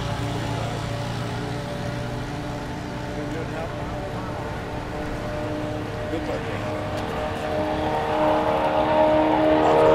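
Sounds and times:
race car engine at high revs: 0:00.0 - 0:09.9.

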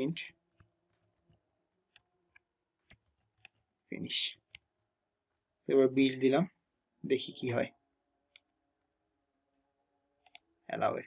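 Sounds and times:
keyboard typing clicks: 0:10.2 - 0:10.4.

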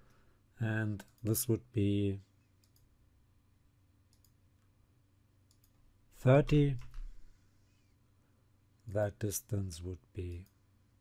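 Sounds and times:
computer mouse clicks: 0:02.6 - 0:02.9, 0:04.1 - 0:04.7, 0:05.5 - 0:05.8.

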